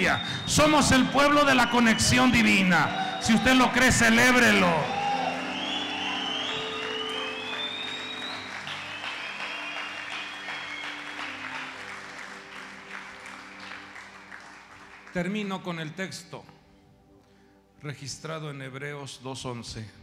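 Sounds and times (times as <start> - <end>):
congregation applauding: 0.0 - 15.6.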